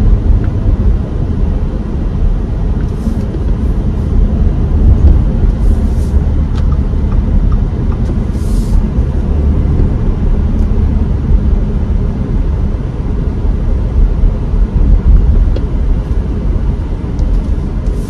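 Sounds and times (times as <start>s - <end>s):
car road and drivetrain rumble: 0.0s - 18.0s
brief hiss: 8.3s - 8.8s.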